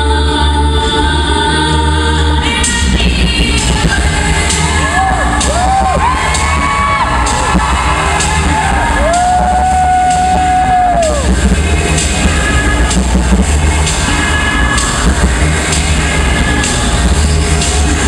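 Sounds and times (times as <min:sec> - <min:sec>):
a cappella group singing: 0:00.0 - 0:05.7
sung bass line: 0:00.0 - 0:18.0
vocal percussion beat: 0:02.6 - 0:18.0.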